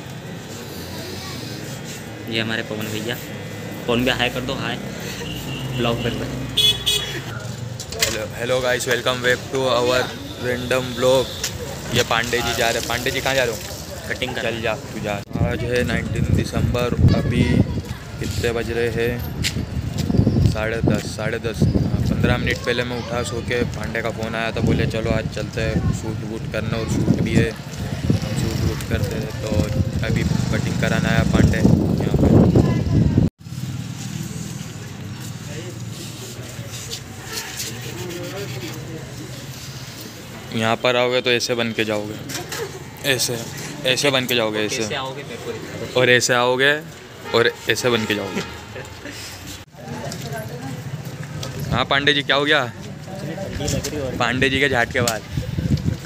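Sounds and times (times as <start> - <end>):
faint voices: 0.0 - 6.4, 34.9 - 51.7
street noise: 0.0 - 56.0
man talking: 2.2 - 5.0, 5.7 - 6.5, 8.0 - 17.6, 20.4 - 32.4, 40.5 - 42.3, 43.0 - 48.9
vehicle horn toots: 5.2 - 7.3.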